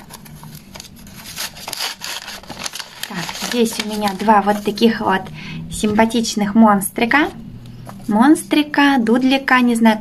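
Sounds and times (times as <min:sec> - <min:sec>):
paper rustling and crinkling: 0:00.0 - 0:05.0.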